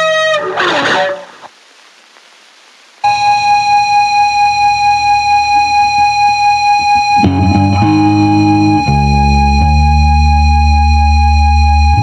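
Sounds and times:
guitar feedback tone: 0:03.1 - 0:12.0
distorted guitar and bass: 0:06.6 - 0:12.0.

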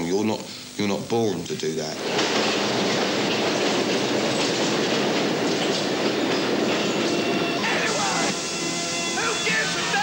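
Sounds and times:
train rumbling on rails: 0:02.0 - 0:08.6.

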